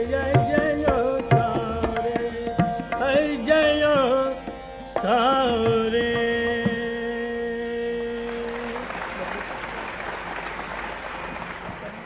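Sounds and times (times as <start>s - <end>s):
audience applause: 8.3s - 12.0s.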